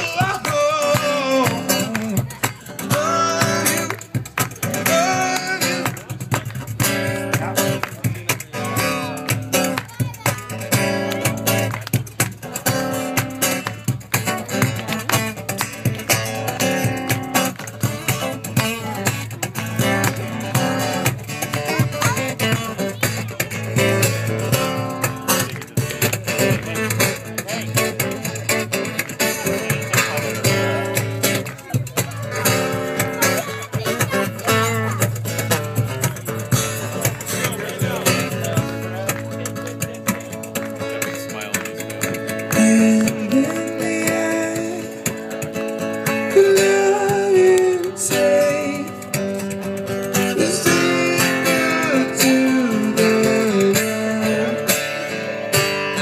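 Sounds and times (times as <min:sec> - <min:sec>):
acoustic guitar strumming chords: 0:00.0 - 0:56.0.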